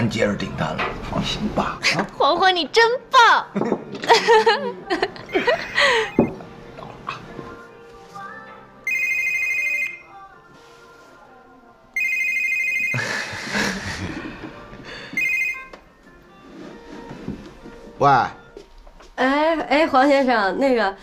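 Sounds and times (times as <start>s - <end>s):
soft background music: 0.0s - 21.0s
mobile phone ringing: 5.3s - 6.4s, 8.8s - 10.2s, 12.0s - 13.1s, 15.1s - 15.8s.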